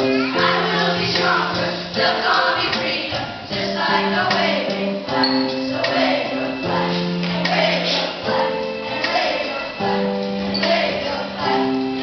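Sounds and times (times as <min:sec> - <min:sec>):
children singing together: 0:00.0 - 0:12.0
instrumental accompaniment: 0:00.0 - 0:12.0.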